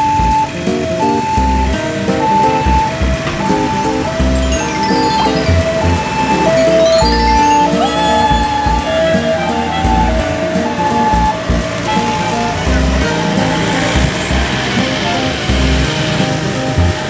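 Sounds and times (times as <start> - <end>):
cheerful jingle music: 0.3 - 17.0.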